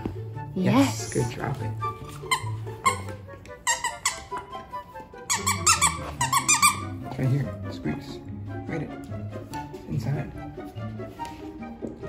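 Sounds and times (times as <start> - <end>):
background music: 0.0 - 12.0
dog toy squeaking: 1.9 - 7.0.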